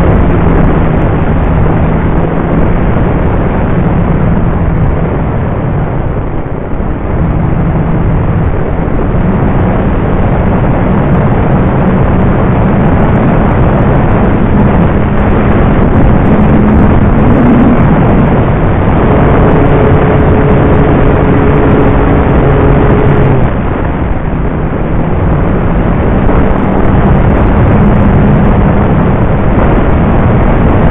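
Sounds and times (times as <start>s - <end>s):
heavy wind rush: 0.0s - 30.9s
model plane propeller hum: 0.0s - 30.9s.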